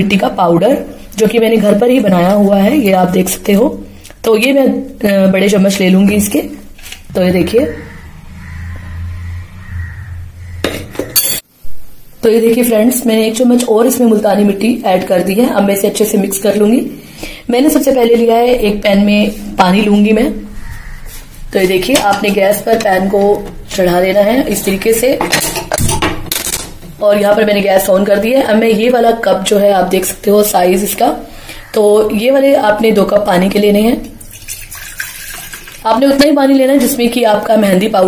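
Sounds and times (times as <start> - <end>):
woman speaking: 0.0 - 8.0, 12.2 - 20.6, 21.5 - 25.3, 27.0 - 34.2, 35.8 - 38.0
low steady hum: 0.0 - 20.7.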